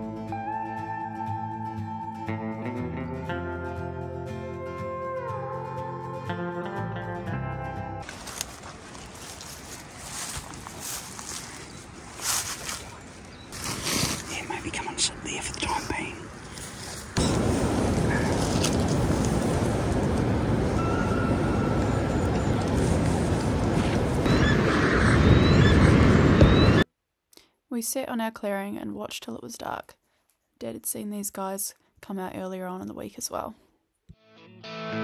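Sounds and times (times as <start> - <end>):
vegetation brushing against camera: 8.0 - 17.2
wind rumble on microphone: 16.4 - 26.8.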